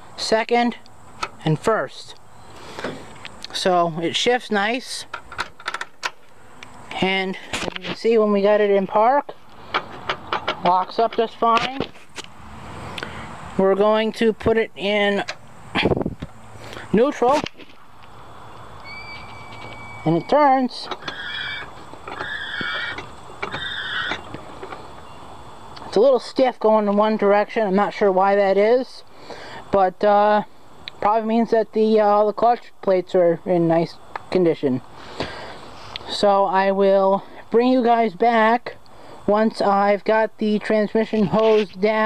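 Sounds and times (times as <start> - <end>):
transmission shaft squeaks: 18.6 - 25.3.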